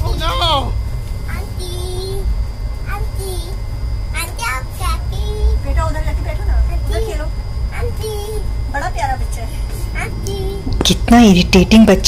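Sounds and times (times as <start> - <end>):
train carriage rumble: 0.0 - 12.0
young boy talking: 1.3 - 9.0, 9.7 - 10.8.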